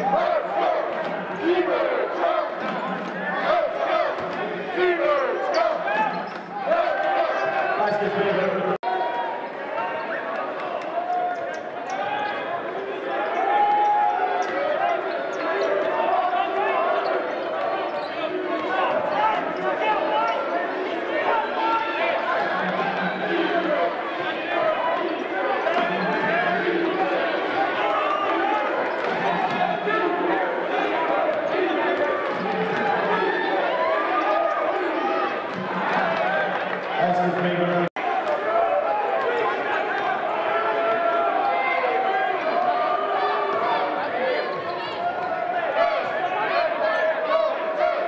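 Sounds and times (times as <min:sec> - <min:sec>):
voices of players and spectators: 0:00.0 - 0:48.0.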